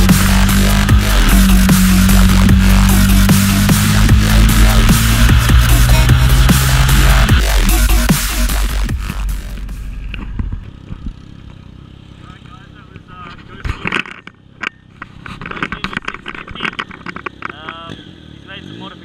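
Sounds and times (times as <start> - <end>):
motorcycle engine rumble: 0.0 - 19.0
man talking: 12.2 - 13.9, 17.5 - 19.0.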